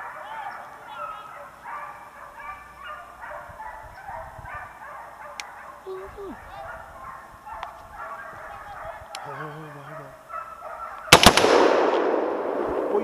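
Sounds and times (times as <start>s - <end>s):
hounds baying: 0.0s - 11.2s.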